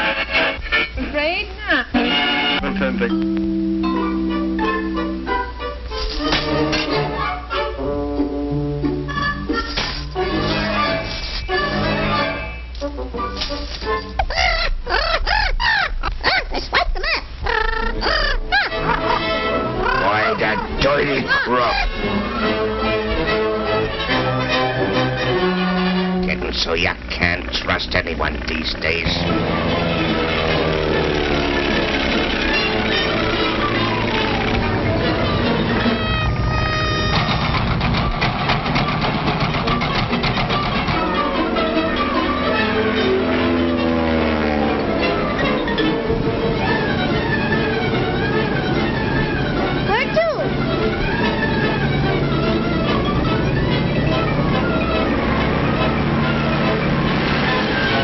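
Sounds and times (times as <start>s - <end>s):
cartoon soundtrack music: 0.0s - 16.4s, 17.0s - 58.0s
squawky bird-like calls: 14.2s - 22.7s, 26.5s - 37.6s, 46.6s - 55.2s
fast even clatter: 26.3s - 34.7s, 36.9s - 41.9s.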